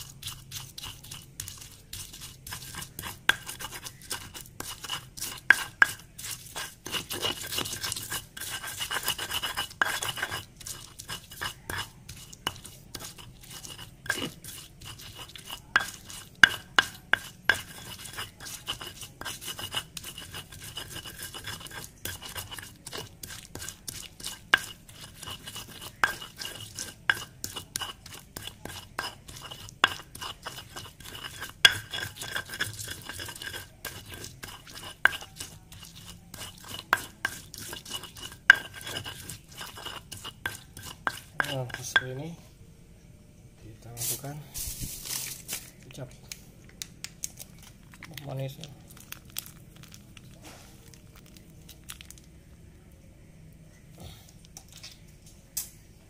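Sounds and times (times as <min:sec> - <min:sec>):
stone pestle grinding in mortar: 0:00.0 - 0:42.3.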